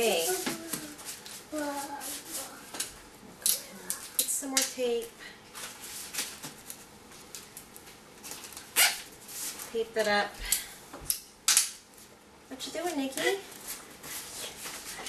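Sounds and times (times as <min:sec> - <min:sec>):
paper and tape crinkling: 0:00.0 - 0:10.0
tape ripping: 0:08.3 - 0:09.1.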